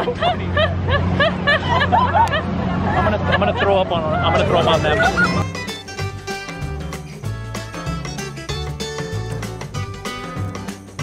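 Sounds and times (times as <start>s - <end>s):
girls laughing: 0.0s - 5.5s.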